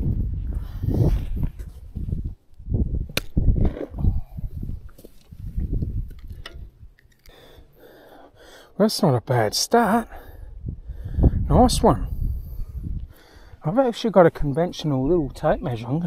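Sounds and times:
microphone handling noise: 0:00.0 - 0:06.9
wind rumbling on microphone: 0:00.0 - 0:07.0, 0:10.1 - 0:13.7.

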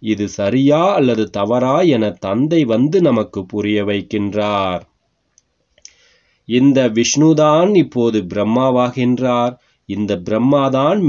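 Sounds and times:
person reading aloud: 0:00.0 - 0:04.9, 0:06.5 - 0:11.0
mouth clicks: 0:05.3 - 0:06.1
soft breath: 0:05.7 - 0:06.5, 0:09.6 - 0:09.9.

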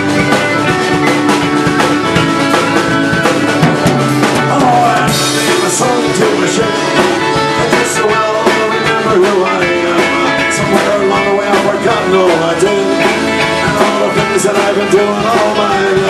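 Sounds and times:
drum kit beat: 0:00.0 - 0:16.0
strummed acoustic guitar: 0:00.0 - 0:16.0.

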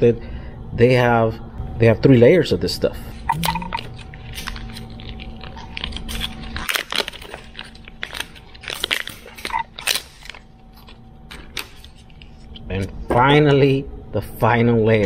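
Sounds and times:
plastic wrap crinkling and tearing: 0:03.9 - 0:12.6.

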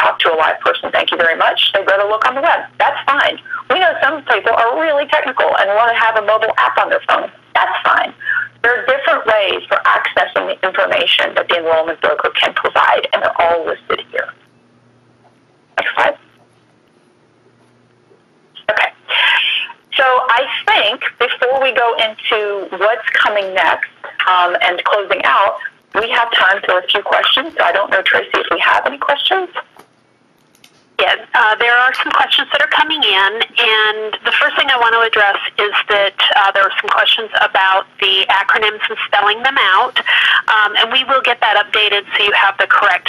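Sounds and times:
person talking over telephone line: 0:00.0 - 0:14.4, 0:15.8 - 0:16.2, 0:18.6 - 0:29.6, 0:31.0 - 0:43.0
person speaking over phone line: 0:15.8 - 0:16.2.

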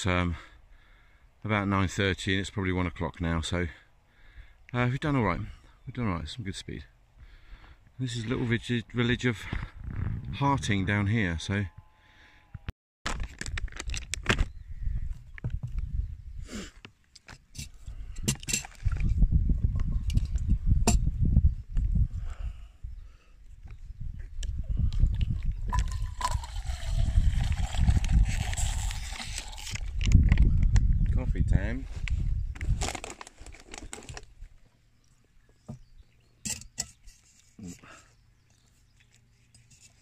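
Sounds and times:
wind rumbling on microphone: 0:08.2 - 0:11.1, 0:12.5 - 0:16.7, 0:17.5 - 0:34.6
water pouring from bottle: 0:18.3 - 0:20.4, 0:24.8 - 0:30.6
snack bag crinkling: 0:25.9 - 0:30.1, 0:32.6 - 0:34.3.

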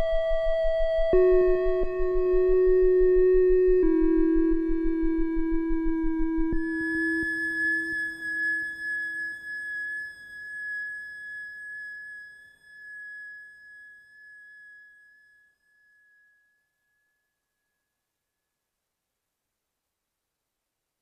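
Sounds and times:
low synthesizer drone: 0:00.0 - 0:06.7
synthesizer high sustained tone: 0:00.0 - 0:15.9.

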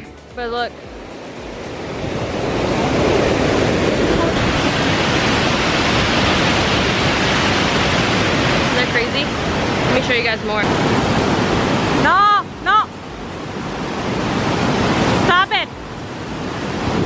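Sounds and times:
stream rushing over waterfall: 0:00.0 - 0:17.0.

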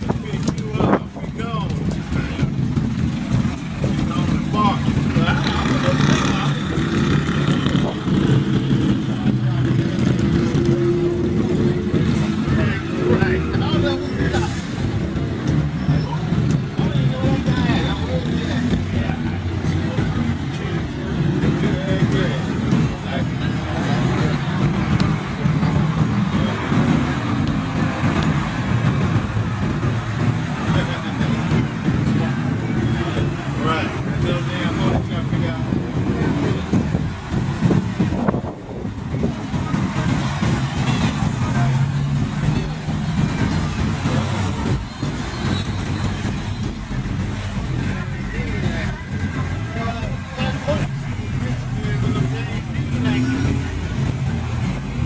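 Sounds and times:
car engines passing: 0:00.0 - 0:55.0
indistinct crowd chatter: 0:00.0 - 0:55.0.

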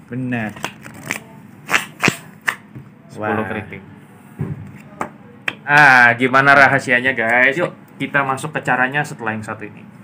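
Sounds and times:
playing cards snapping and sliding: 0:00.5 - 0:02.6.

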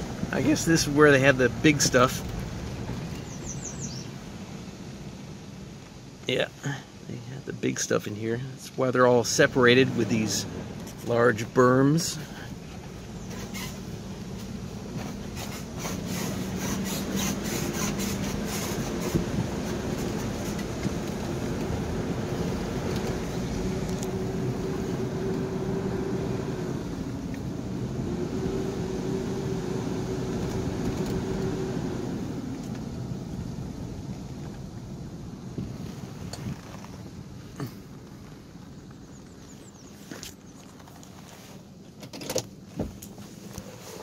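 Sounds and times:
tyres crunching on dirt: 0:00.0 - 0:04.1
car engine running: 0:00.0 - 0:06.0, 0:08.2 - 0:39.9.

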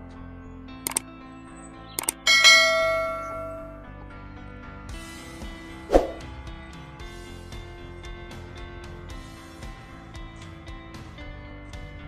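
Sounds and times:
background music: 0:00.0 - 0:12.0
mouse clicks: 0:00.8 - 0:01.1, 0:02.0 - 0:02.2
notification bell chime: 0:02.0 - 0:03.8.

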